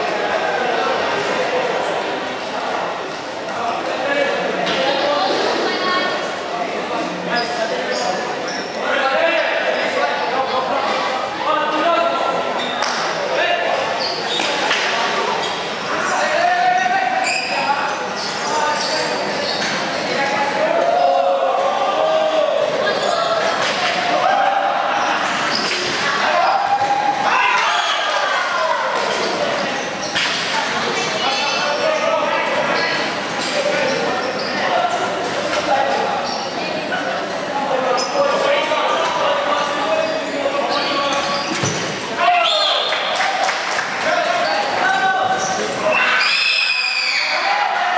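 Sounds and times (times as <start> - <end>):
people chattering: 0.0 - 47.9
people shouting: 26.0 - 29.0.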